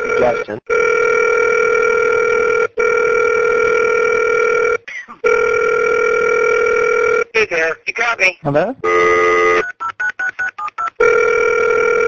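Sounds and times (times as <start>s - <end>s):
telephone dial tone: 0.0s - 7.3s, 8.9s - 12.0s.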